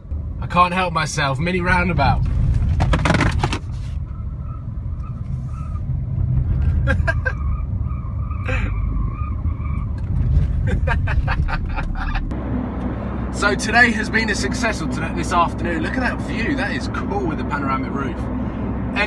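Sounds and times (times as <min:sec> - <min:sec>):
car engine and road rumble: 0:00.0 - 0:19.0
man laughing: 0:06.8 - 0:07.4, 0:08.5 - 0:08.8, 0:10.5 - 0:12.3.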